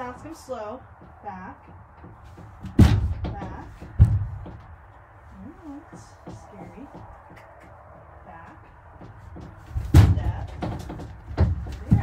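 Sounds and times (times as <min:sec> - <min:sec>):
woman's voice: 0:00.0 - 0:01.7, 0:03.3 - 0:03.8, 0:05.3 - 0:07.0, 0:08.2 - 0:08.7, 0:10.0 - 0:10.6, 0:11.7 - 0:12.0
hoof thump on trailer floor: 0:00.0 - 0:12.0.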